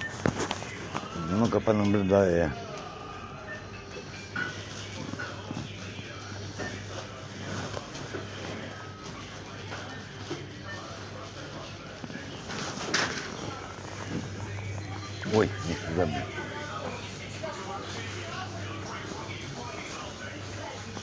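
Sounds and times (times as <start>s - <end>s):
indistinct voices of shoppers: 0.0s - 21.0s.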